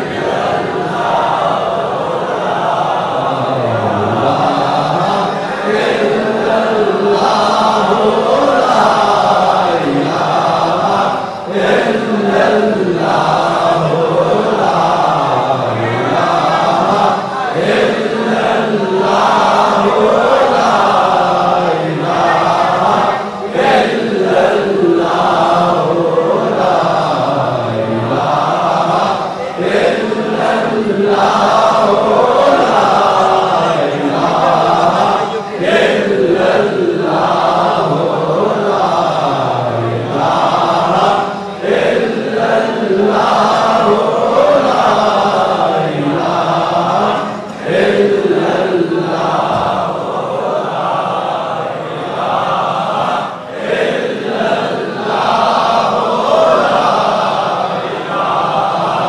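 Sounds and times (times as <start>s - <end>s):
men chanting a devotional refrain: 0.0s - 59.0s.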